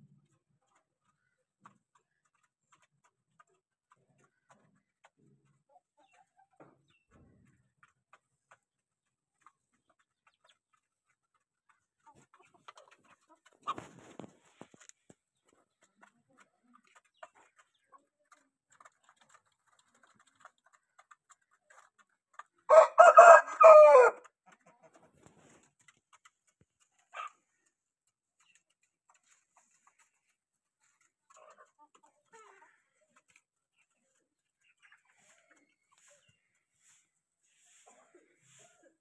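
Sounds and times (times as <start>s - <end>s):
rooster crowing: 22.7s - 24.2s.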